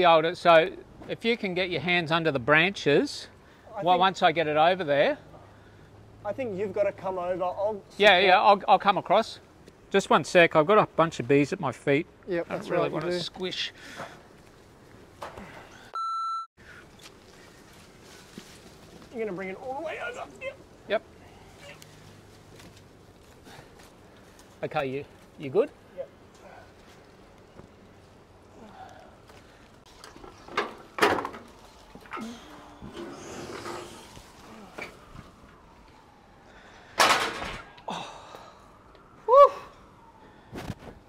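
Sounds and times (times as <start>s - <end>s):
faint outdoor background: 0.0s - 41.0s
censor bleep: 16.0s - 16.5s
tree branches rustling: 16.6s - 36.9s.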